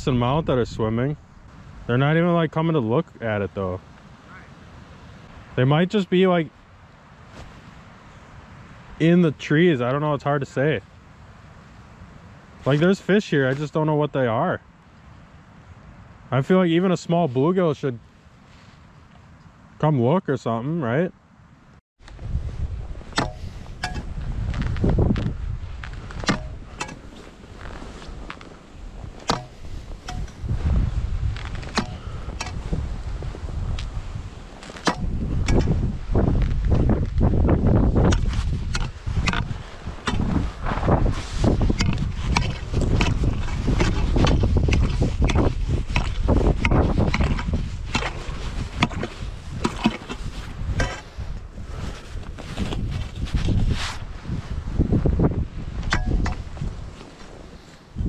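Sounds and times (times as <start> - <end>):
footsteps crunching on snow: 7.2 - 7.8, 22.1 - 55.7, 56.4 - 58.0
wind buffeting microphone: 22.0 - 58.0
ice spud striking ice: 29.2 - 30.3.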